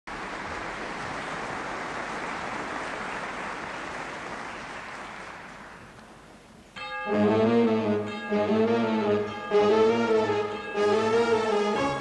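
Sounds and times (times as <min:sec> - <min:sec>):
audience applause: 0:00.1 - 0:06.0.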